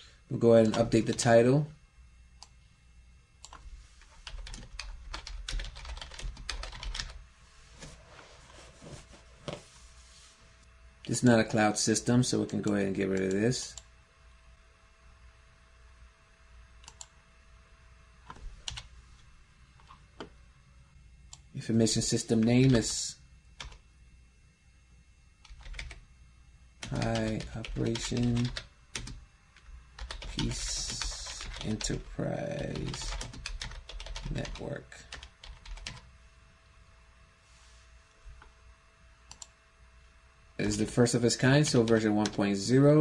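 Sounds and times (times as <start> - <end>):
typing on computer keyboard: 4.2 - 7.2, 25.4 - 26.0, 26.8 - 29.2, 30.0 - 31.9, 32.7 - 36.0.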